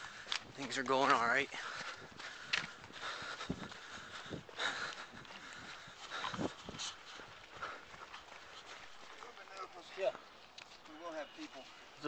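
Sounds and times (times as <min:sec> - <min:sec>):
panting breaths: 0:00.0 - 0:00.6, 0:01.5 - 0:09.2
footsteps thudding on dirt: 0:00.0 - 0:09.4.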